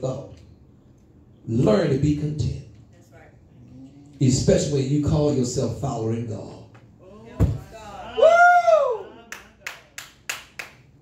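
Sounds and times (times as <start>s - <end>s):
hand claps: 9.3s - 10.9s.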